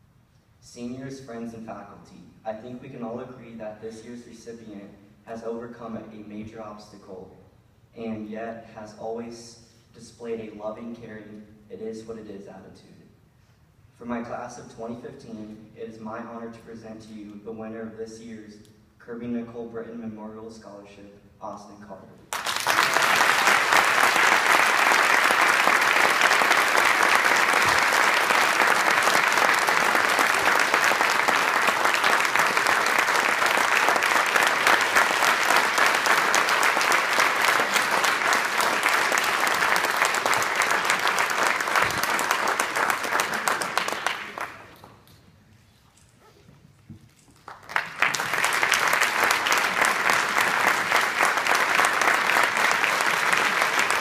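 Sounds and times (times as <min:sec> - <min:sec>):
audience applauding: 0:22.3 - 0:44.9, 0:47.4 - 0:54.0.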